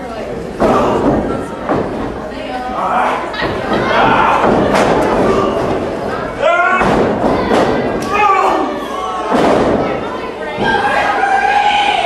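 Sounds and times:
people shouting: 2.8 - 12.0.

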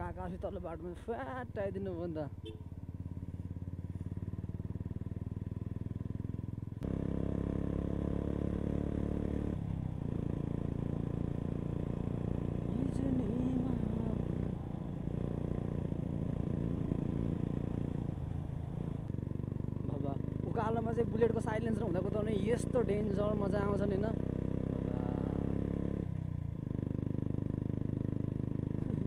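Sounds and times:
motorcycle engine running: 0.0 - 29.0.

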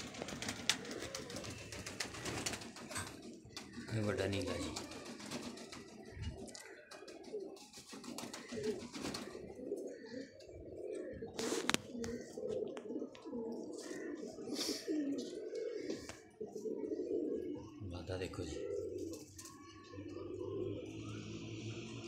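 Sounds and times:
pigeons cooing: 0.0 - 21.7.

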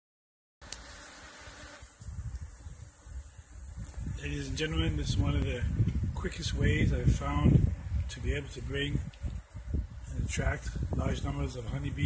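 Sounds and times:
bees buzzing: 0.6 - 4.4.

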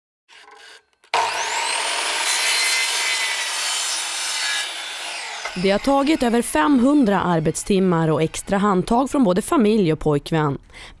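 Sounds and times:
mitre saw cutting wood: 0.3 - 9.4.

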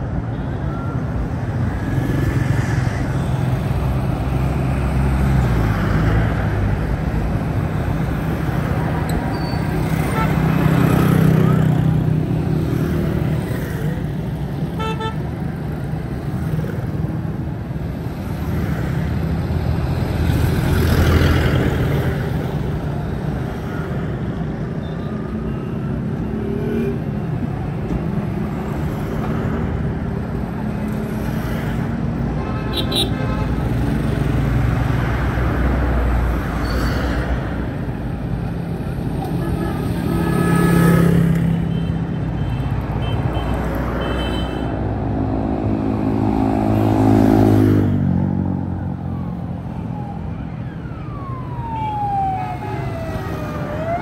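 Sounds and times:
vehicles passing in traffic: 0.0 - 54.0.

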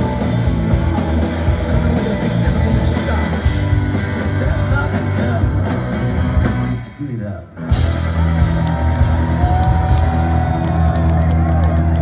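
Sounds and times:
rock band holding chord: 0.0 - 7.0
crowd whooping and yelling: 8.0 - 12.0.

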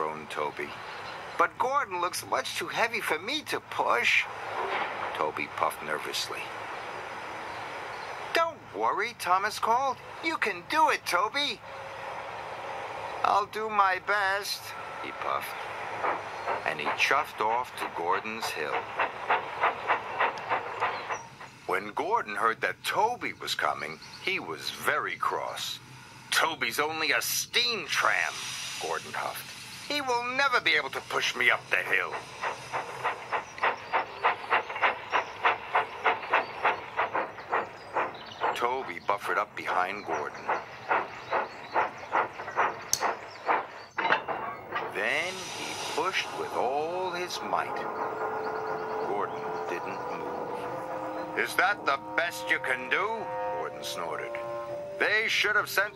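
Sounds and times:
steam locomotive chuffing: 0.0 - 55.9
sharp click: 42.9 - 44.8.

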